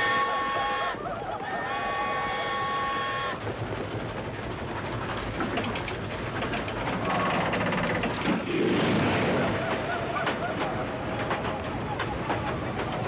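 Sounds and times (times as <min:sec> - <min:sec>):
steam train whistle chord: 0:00.0 - 0:01.0
steam train rumble and clatter: 0:00.0 - 0:13.0.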